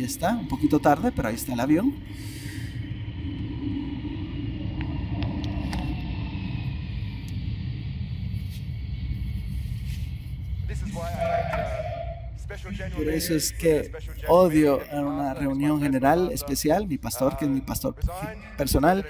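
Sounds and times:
airplane rumble: 0.0 - 19.0
faint falling whine: 0.0 - 19.0.

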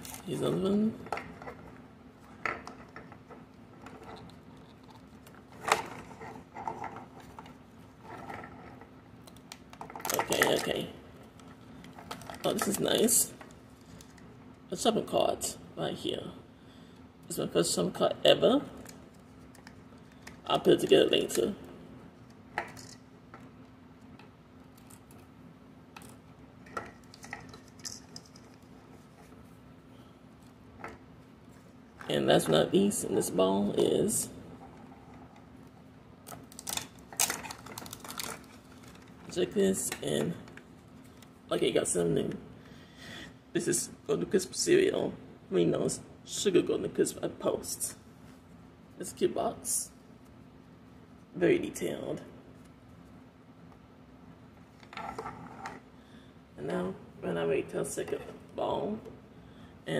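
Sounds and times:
foil wrapper crinkling and tearing: 36.5 - 39.0.

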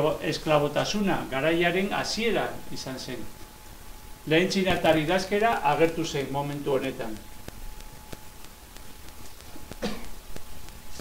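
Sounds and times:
faint electrical hum: 0.0 - 11.0
soft clicks: 5.8 - 11.0
person coughing: 9.8 - 10.2.

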